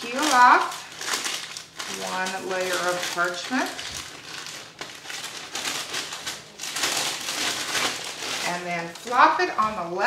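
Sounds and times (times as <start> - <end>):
parchment paper crinkling: 0.0 - 10.0.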